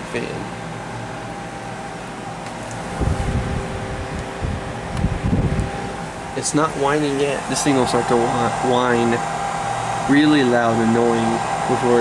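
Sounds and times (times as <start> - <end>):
fan motor hum: 0.0 - 12.0
wind buffeting microphone: 2.9 - 6.0.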